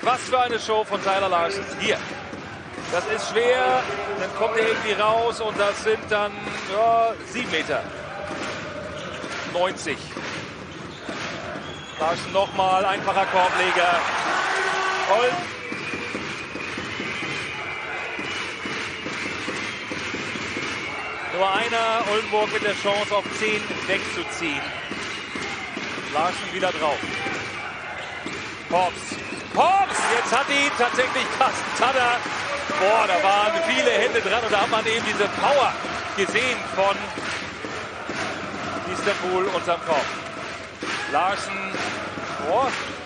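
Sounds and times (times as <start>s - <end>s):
arena crowd noise: 0.0s - 43.0s.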